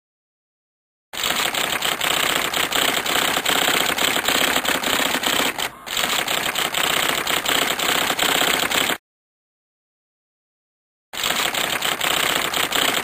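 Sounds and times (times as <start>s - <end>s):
typewriter keys clacking: 11.2s - 13.0s.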